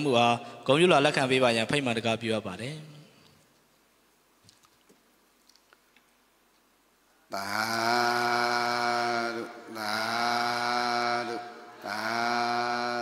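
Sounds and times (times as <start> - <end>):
breaths: 0.4 - 0.7
man chanting held notes: 7.4 - 13.0.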